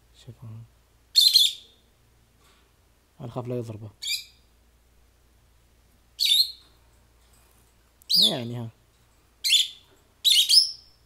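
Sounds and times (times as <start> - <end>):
lovebirds chirping shrilly: 1.2 - 1.8, 4.0 - 4.4, 6.2 - 6.7, 8.1 - 8.6, 9.4 - 11.0.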